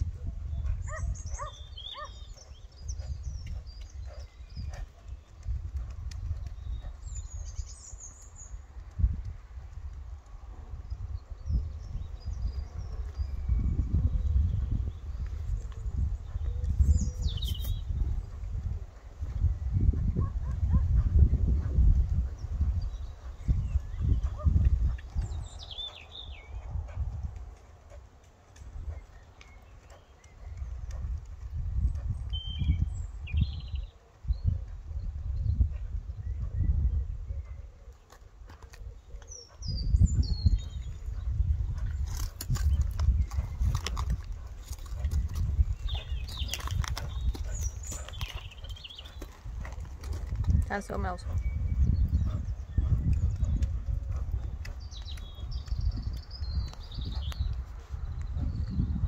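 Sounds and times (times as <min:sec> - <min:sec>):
wind rumbling on microphone: 0:00.0 - 0:59.0
birds chirping: 0:00.5 - 0:08.6, 0:11.2 - 0:18.4, 0:22.4 - 0:26.9, 0:27.5 - 0:59.0.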